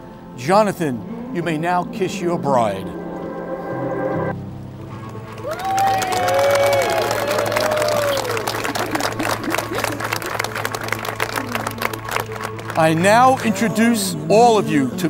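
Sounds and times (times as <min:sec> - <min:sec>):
background music: 0:00.0 - 0:15.0
guests clapping and whooping: 0:05.0 - 0:13.0.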